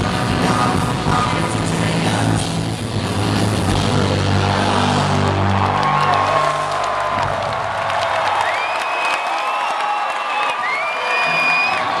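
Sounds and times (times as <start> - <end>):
rock band bass chord: 0.0 - 6.0
crowd cheering and clapping: 3.7 - 12.0.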